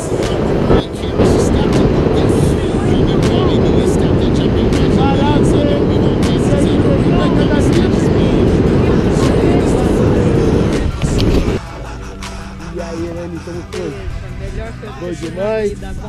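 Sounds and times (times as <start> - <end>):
wind buffeting microphone: 0.0 - 11.6.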